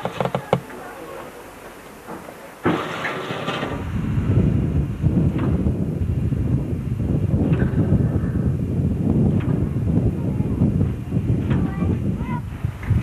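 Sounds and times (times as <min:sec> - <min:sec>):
railcar rolling rumble: 0:00.0 - 0:13.0.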